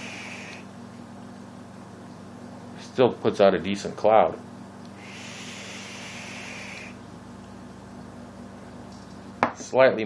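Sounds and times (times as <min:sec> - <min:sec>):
hiss of vaping draw: 0:00.0 - 0:00.7, 0:05.0 - 0:07.0.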